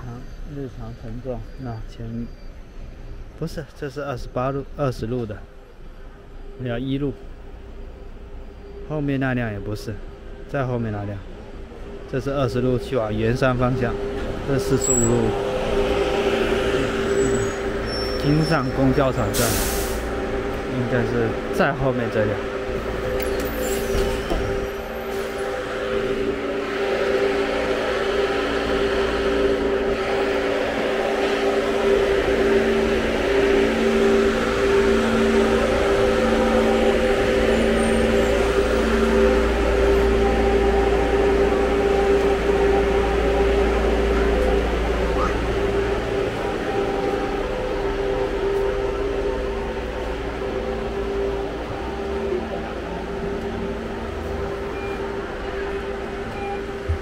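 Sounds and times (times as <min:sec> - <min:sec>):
buses idling drone: 0:00.0 - 0:57.0
low engine rumble: 0:04.6 - 0:57.0
pulsing whining tone: 0:11.3 - 0:57.0.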